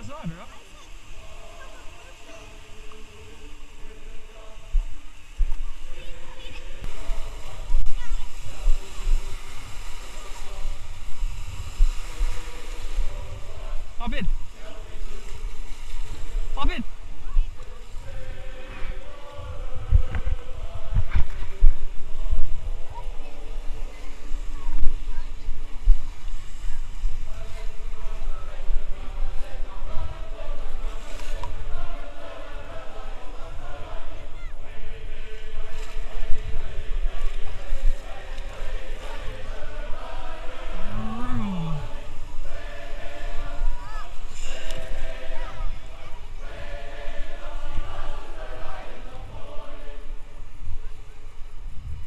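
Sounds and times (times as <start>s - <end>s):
people shouting on beach: 0.0s - 4.7s, 5.7s - 21.0s, 27.2s - 51.2s
lake surf splashing around boat: 0.0s - 52.0s
wind buffeting microphone: 6.6s - 44.3s, 44.9s - 52.0s
person calling out: 40.9s - 42.0s.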